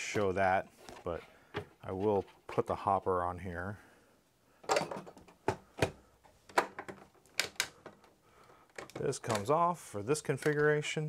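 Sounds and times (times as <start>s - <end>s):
hard plastic parts clacking: 4.6s - 11.0s.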